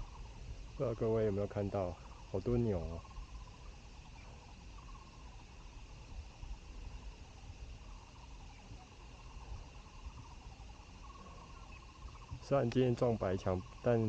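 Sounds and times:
high insect drone: 0.0 - 14.0
short trilling calls: 1.8 - 6.6, 7.8 - 14.0.

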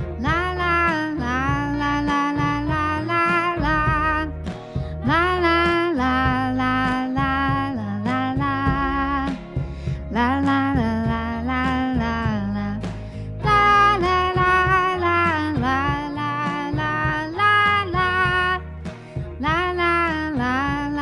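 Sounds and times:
steady bass line: 0.0 - 21.0
woman singing with vibrato: 0.2 - 4.4, 5.0 - 9.4, 10.1 - 18.6, 19.4 - 21.0
band accompaniment: 2.4 - 11.3, 12.0 - 21.0.

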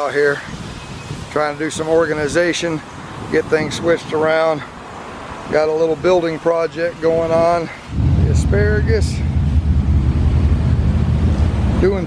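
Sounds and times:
wind buffeting microphone: 0.0 - 6.2, 7.0 - 12.0.

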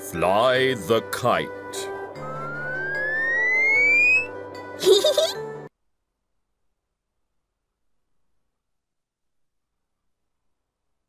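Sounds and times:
light background music: 0.0 - 5.7
rising cartoon whistle: 2.2 - 4.4.

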